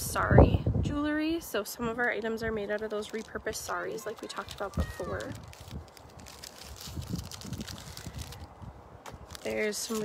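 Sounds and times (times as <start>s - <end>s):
wind rumble on microphone: 0.0s - 3.7s, 4.4s - 10.0s
jewelry handling rustle: 1.5s - 10.0s.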